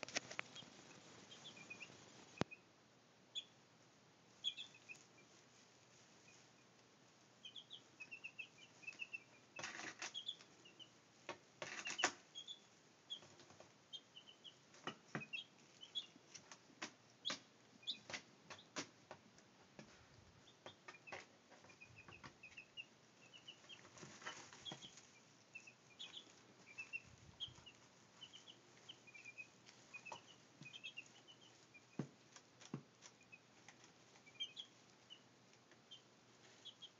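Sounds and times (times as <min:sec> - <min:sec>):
chicks peeping: 0:00.0 - 0:03.7, 0:04.3 - 0:36.9
chicks pecking and scratching: 0:00.0 - 0:36.9.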